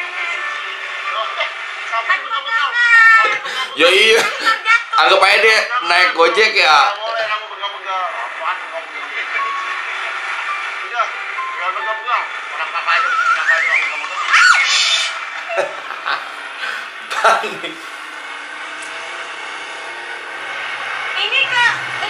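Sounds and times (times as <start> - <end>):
voices: 0.0 - 22.0
background music: 9.4 - 13.9
high wavering voice-like line: 12.9 - 15.6.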